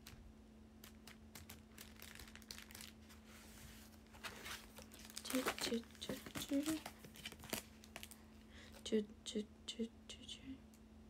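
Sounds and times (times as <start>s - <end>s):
faint steady hum: 0.0s - 11.0s
rustling handling noise: 0.8s - 8.8s.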